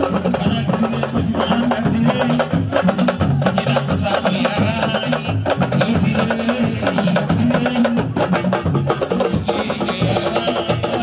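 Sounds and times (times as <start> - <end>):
drum ensemble fast rhythm: 0.0 - 11.0.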